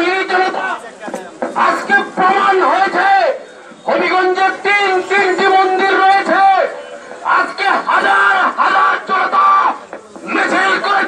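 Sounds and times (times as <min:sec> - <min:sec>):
crowd of men shouting slogans: 0:05.0 - 0:11.0.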